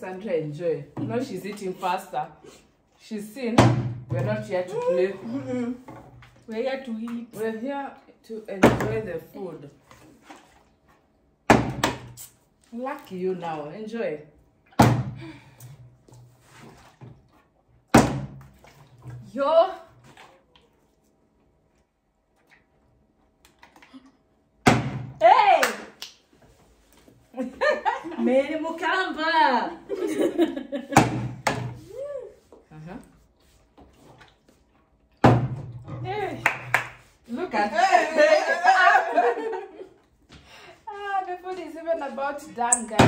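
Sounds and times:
person shouting: 4.7 - 5.3
person saying uh-huh: 4.7 - 5.8
sudden thump: 24.7 - 25.2.

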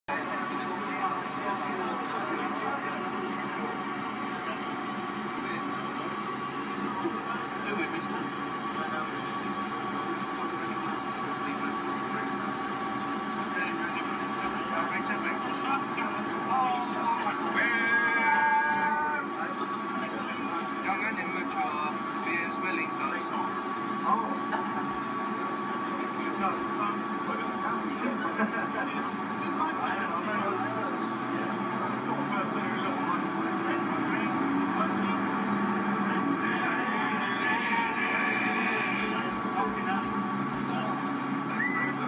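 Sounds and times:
bus running noise: 0.1 - 42.0
indistinct voices: 0.1 - 42.0
steady high whine: 0.1 - 42.0.

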